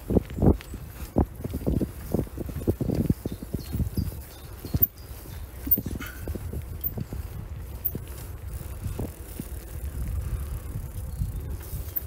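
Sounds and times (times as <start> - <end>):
camera movement rumble on gravel: 0.0 - 12.0.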